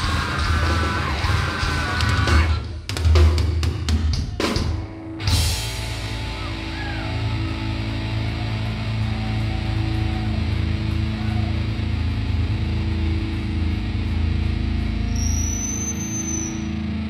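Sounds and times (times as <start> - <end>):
distorted guitar and bass drone: 0.0 - 2.9, 4.3 - 17.0
high whistling tone: 15.1 - 16.8.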